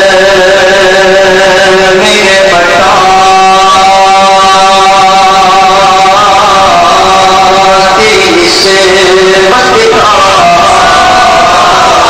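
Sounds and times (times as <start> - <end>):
men singing long unaccompanied note: 0.0 - 12.0.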